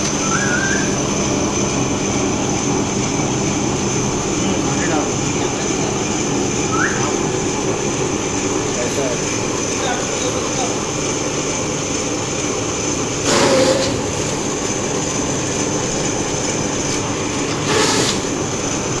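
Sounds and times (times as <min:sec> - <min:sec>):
paper shredder whining: 0:00.0 - 0:19.0
paper sheets being shredded: 0:13.2 - 0:14.6, 0:16.1 - 0:18.8.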